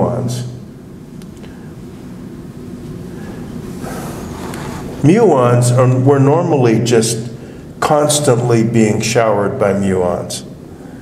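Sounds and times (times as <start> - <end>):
lecture hall room noise: 0.0 - 11.0.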